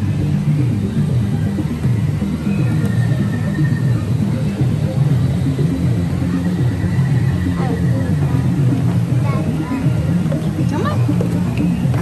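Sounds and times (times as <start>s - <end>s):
indistinct voices: 0.0s - 12.0s
steady low rumble: 0.0s - 12.0s.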